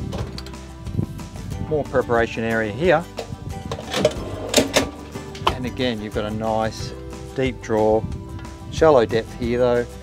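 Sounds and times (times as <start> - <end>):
background music: 0.0 - 10.0
drawer clicks and clatter: 3.7 - 5.6
drawer sliding on metal runners: 3.7 - 5.6.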